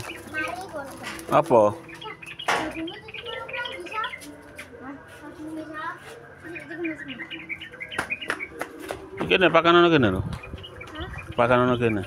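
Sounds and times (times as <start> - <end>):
bird chirping: 0.0 - 4.6, 6.3 - 12.0.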